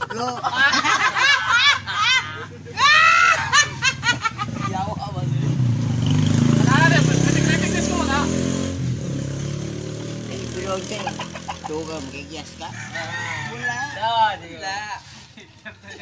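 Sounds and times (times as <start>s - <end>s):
people laughing loudly: 0.0s - 5.0s, 10.8s - 12.0s, 15.4s - 16.0s
motorcycle engine passing by: 3.6s - 14.4s.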